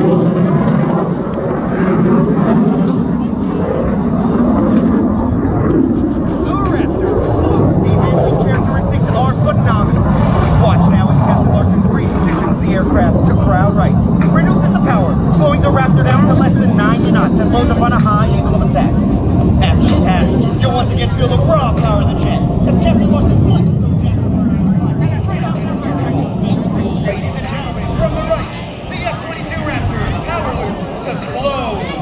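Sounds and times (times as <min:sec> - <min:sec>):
jet engines rumbling overhead: 0:00.0 - 0:32.0
people's voices: 0:00.0 - 0:32.0.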